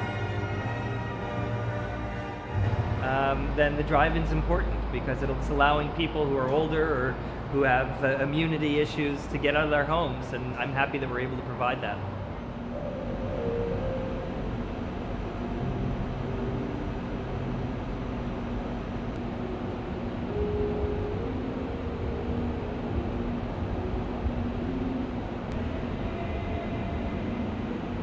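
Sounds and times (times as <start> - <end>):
low rumble of large hall: 0.0 - 28.0
slow held ambient tones: 0.0 - 28.0.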